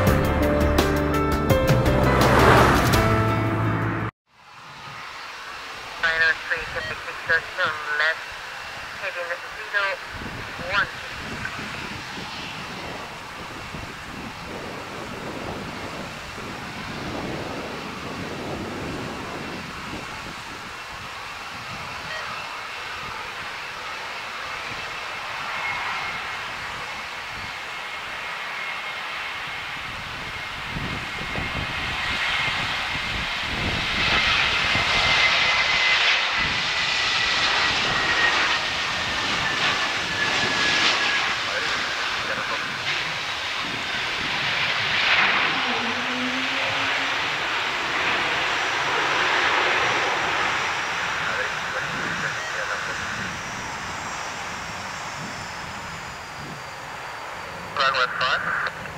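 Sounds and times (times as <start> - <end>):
airliner engines flying past: 0.0 - 58.9
high whine sliding down: 39.4 - 57.8.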